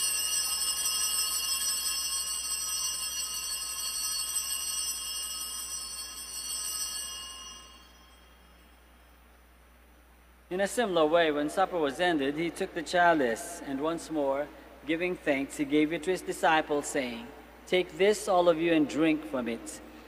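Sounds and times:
altar bells ringing: 0.0 - 9.1.

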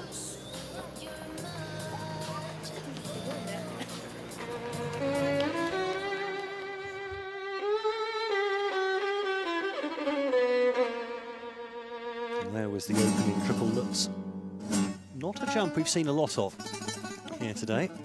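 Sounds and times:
arena background noise: 0.0 - 7.9
solo violin music: 4.3 - 12.8.

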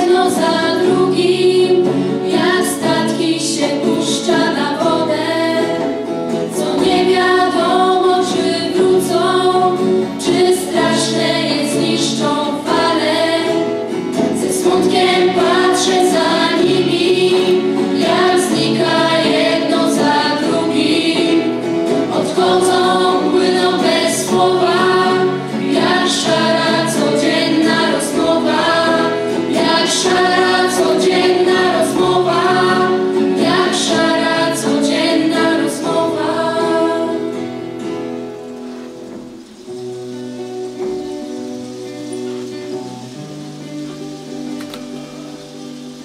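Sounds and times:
children singing together: 0.0 - 38.2
acoustic guitar: 0.0 - 46.0
live band music: 0.0 - 46.0
violin: 0.0 - 46.0.

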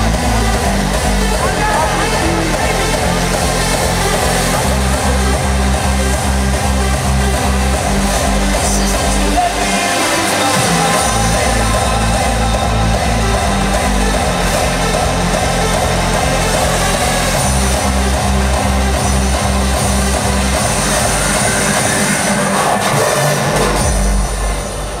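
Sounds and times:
hardstyle dance music: 0.0 - 25.0.

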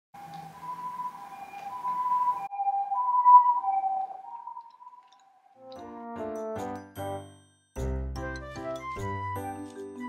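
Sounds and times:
two-tone ambulance siren: 0.2 - 5.1.

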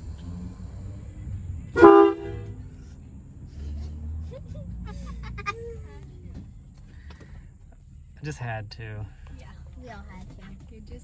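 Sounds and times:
woman laughing and exclaiming: 4.2 - 6.3.

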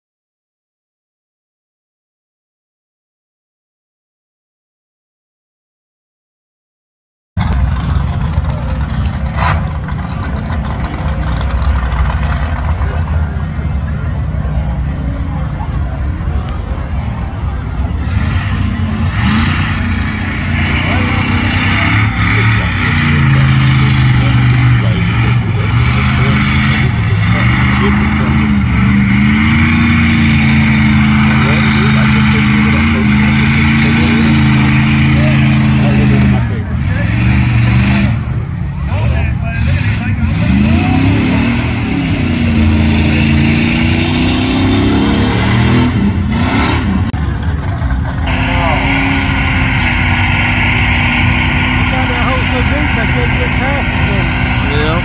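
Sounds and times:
truck engine revving: 7.4 - 55.0.

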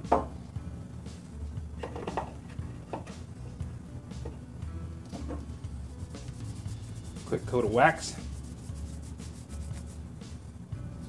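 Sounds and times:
gloved hands scrubbing metal: 5.8 - 10.2.

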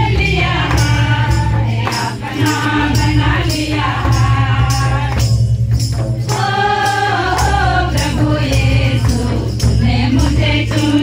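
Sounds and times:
group singing over a beat: 0.0 - 5.5, 6.2 - 11.0
strong low drum: 0.0 - 11.0
tambourine jingling: 0.0 - 11.0.

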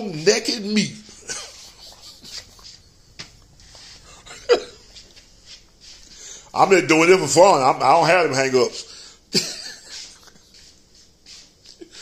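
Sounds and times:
man chuckling: 1.1 - 5.2, 9.3 - 10.6.

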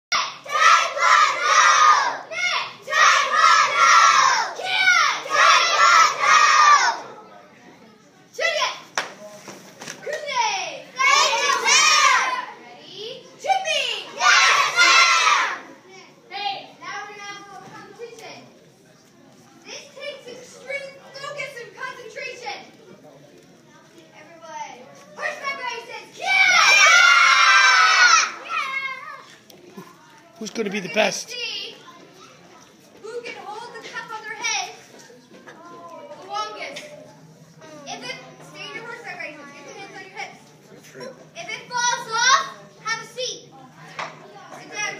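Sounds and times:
children's voices: 0.1 - 9.0, 9.9 - 18.6, 19.4 - 22.8, 23.6 - 44.9
children shouting in unison: 0.2 - 7.0, 14.1 - 15.7, 26.2 - 29.2.

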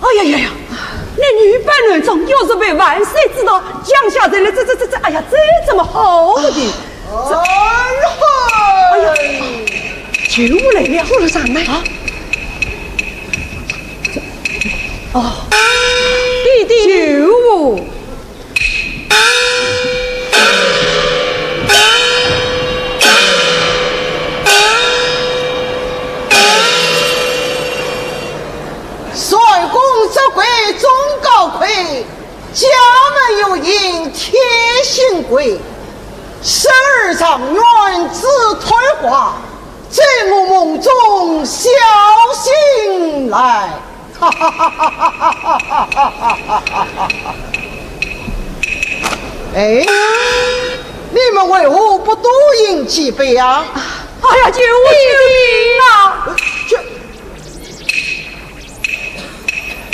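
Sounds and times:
steady low hum: 0.0 - 32.6, 52.0 - 59.9
sharp wooden clicks: 9.2 - 15.1, 45.3 - 49.4
small gong struck: 19.4 - 29.2
man laughing rhythmically: 44.2 - 47.5.

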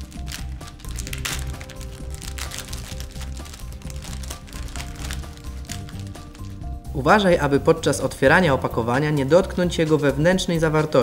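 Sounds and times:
plastic pouch crinkling open: 0.0 - 6.7
background music with steady beat: 0.0 - 11.0.

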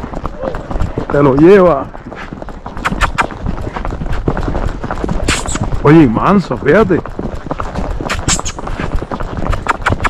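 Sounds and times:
horse hooves on asphalt: 0.0 - 10.0.

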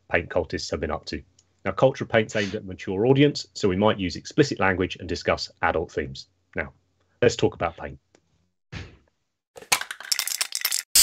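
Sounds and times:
glassy clinks and rattles: 9.7 - 11.0.

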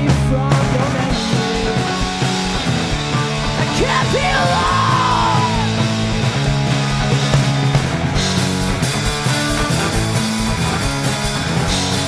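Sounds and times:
distorted electric guitar: 0.0 - 12.0
driving drums: 0.0 - 12.0
person yelling vocals: 3.6 - 5.8.

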